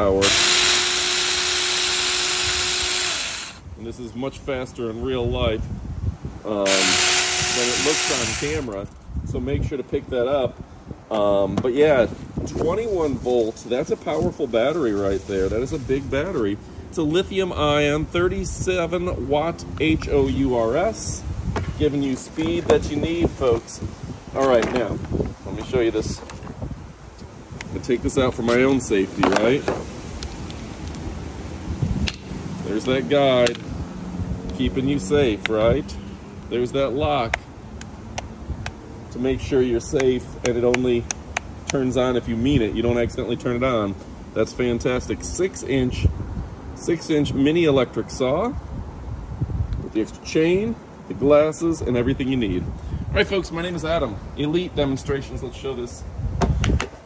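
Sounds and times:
wind hiss on microphone: 0.0 - 57.0
mini chainsaw whining: 0.2 - 3.6, 6.6 - 8.7.

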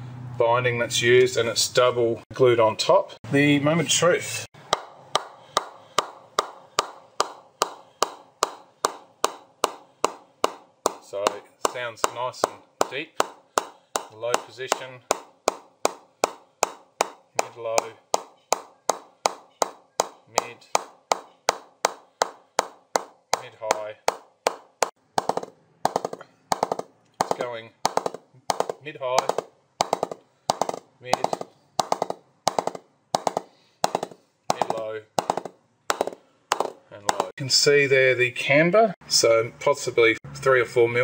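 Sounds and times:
mallet knocking on cricket bat: 4.7 - 37.3.

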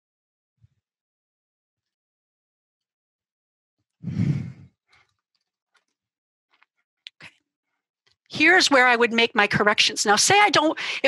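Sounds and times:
person sighing into microphone: 4.0 - 4.7.

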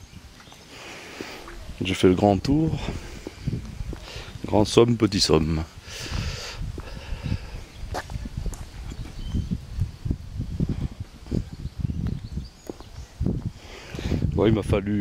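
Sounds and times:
microphone handling rustle: 0.4 - 4.8, 5.5 - 14.7
footsteps low thuds: 2.5 - 4.5, 6.0 - 14.2.

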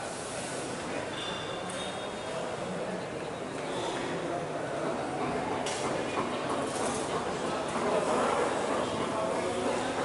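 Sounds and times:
hubbub of waiting crowd: 0.0 - 10.0.

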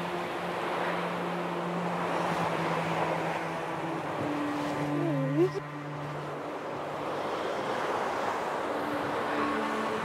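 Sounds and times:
small waves washing on beach: 0.0 - 10.0.

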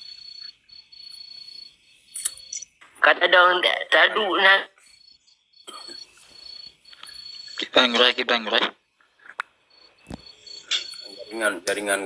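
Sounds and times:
high-pitched insect-like trill: 0.0 - 2.8, 4.8 - 8.5, 9.7 - 12.0.

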